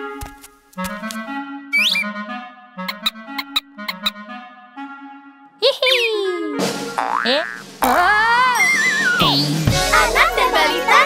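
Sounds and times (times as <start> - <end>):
music: 0.0 - 11.0
springy boing: 7.0 - 8.1.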